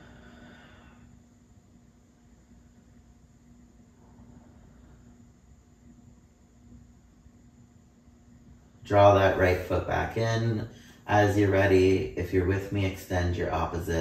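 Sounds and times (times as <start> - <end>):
soft breath: 0.0 - 1.4, 3.8 - 5.6, 10.6 - 11.1
faint steady hum: 0.0 - 14.0.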